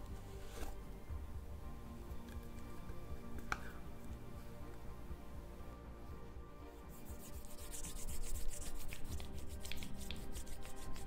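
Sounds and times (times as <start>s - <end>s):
background music: 0.0s - 11.0s
fingers rubbing hair on scalp: 6.9s - 11.0s.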